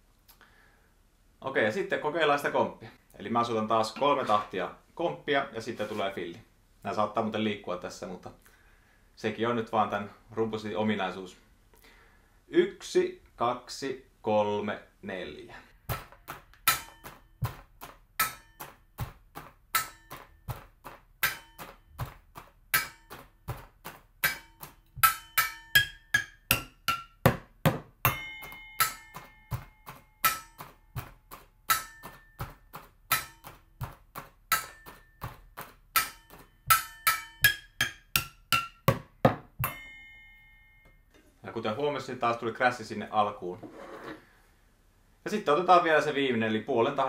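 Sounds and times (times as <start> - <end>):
drumming on pots and pans: 15.9 - 40.0.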